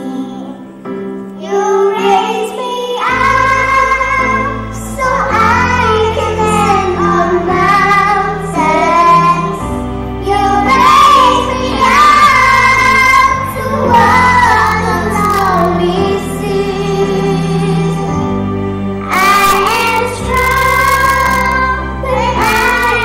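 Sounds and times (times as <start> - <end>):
children singing into microphones: 0.0 - 23.0
music backing track: 0.0 - 23.0.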